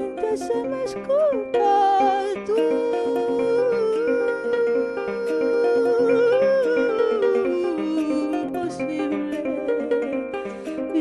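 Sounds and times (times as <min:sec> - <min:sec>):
plucked harp: 0:00.0 - 0:11.0
woman singing wavering notes: 0:00.0 - 0:11.0.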